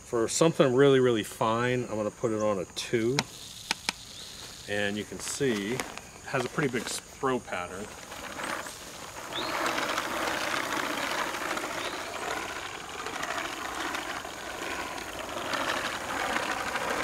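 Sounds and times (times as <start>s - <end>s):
seed spreader whirring clatter: 0.2s - 17.0s.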